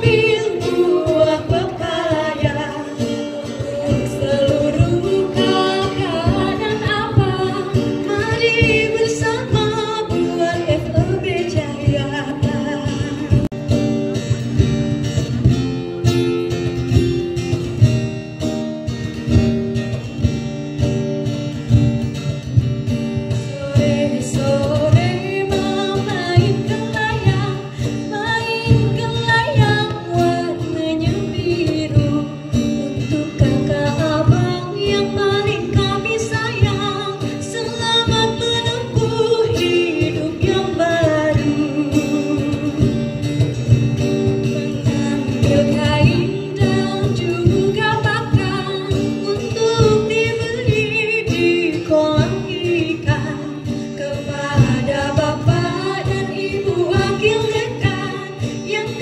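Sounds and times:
woman singing: 0.0s - 14.0s, 23.1s - 59.0s
plucked string instrument: 0.0s - 59.0s.

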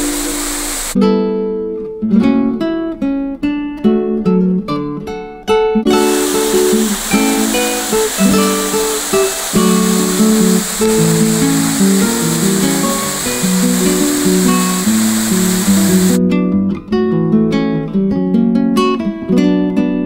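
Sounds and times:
waterfall pouring into a pool: 0.0s - 1.0s, 6.0s - 16.2s
plucked acoustic guitar music: 1.0s - 20.0s.

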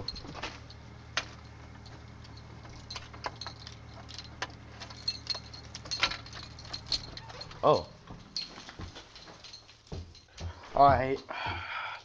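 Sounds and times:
keys and door hardware jingling: 0.0s - 11.2s
steady low hum: 0.0s - 12.0s.

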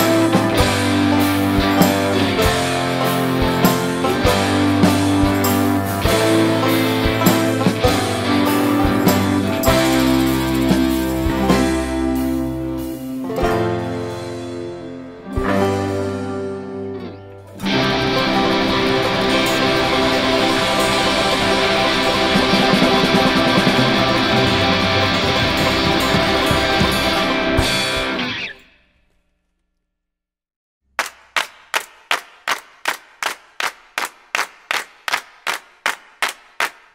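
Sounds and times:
rock band with electric guitars: 0.0s - 28.7s
sharp evenly spaced strikes: 17.6s - 28.3s.

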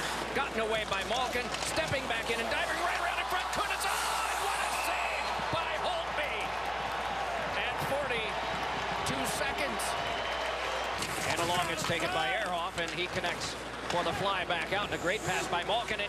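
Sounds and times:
crowd noise: 0.0s - 16.0s
hockey sticks and puck knocking: 0.4s - 3.8s, 11.0s - 14.8s.

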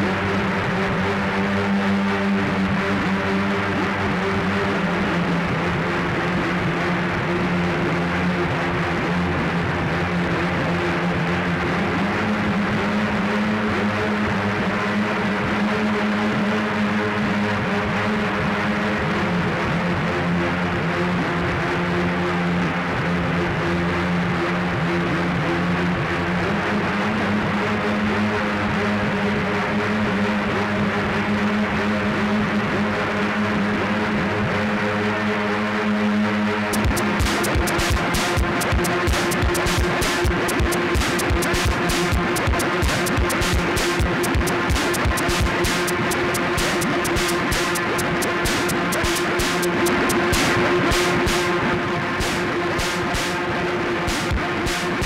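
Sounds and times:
droning synthesizer music: 0.0s - 55.0s.

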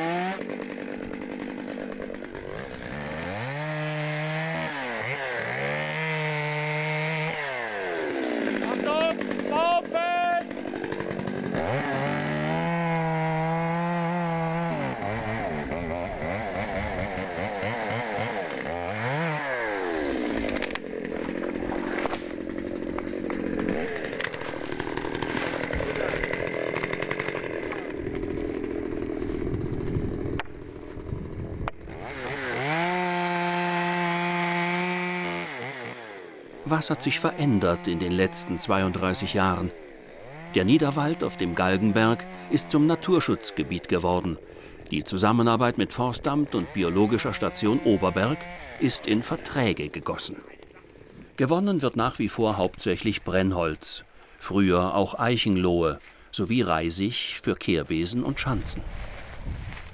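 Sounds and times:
chainsaw revving and cutting wood: 0.0s - 59.9s.

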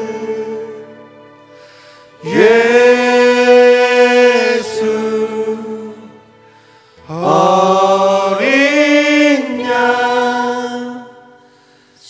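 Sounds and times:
man and woman singing: 2.2s - 6.1s, 7.1s - 11.3s.

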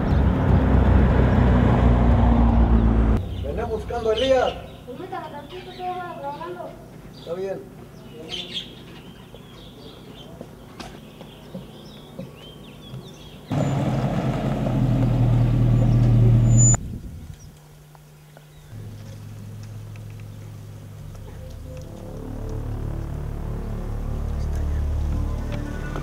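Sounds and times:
birds chirping: 0.0s - 1.4s, 2.4s - 14.2s, 14.8s - 22.8s
low engine hum: 0.0s - 4.8s, 13.5s - 17.4s, 18.6s - 26.0s
pickup truck engine running: 13.5s - 16.6s.

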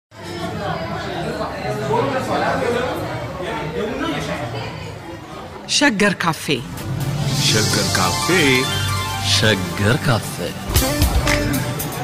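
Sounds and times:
indistinct chatter of voices: 0.1s - 10.7s.

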